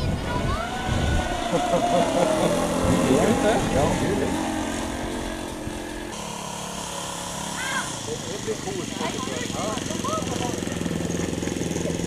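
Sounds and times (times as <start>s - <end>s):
model airplane engine droning: 0.0s - 12.0s.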